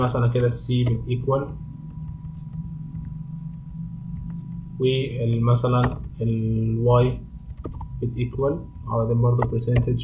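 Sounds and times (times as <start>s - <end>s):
low electrical hum: 0.0s - 10.0s
computer keyboard clicks: 7.5s - 7.9s.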